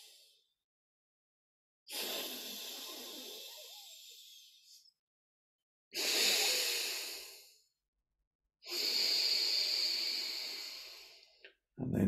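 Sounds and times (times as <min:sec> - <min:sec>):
man breathing through nostril: 0:06.0 - 0:07.6, 0:08.6 - 0:11.4.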